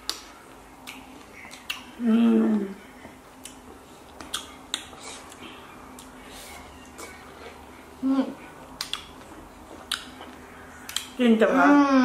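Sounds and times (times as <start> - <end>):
wet mouth smacks: 0.0 - 1.9, 3.4 - 6.2, 8.8 - 11.2.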